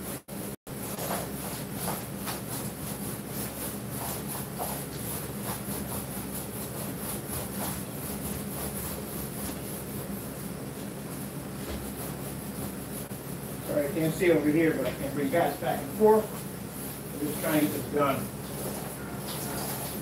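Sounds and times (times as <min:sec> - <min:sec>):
low mechanical hum with hiss: 0:00.0 - 0:20.0.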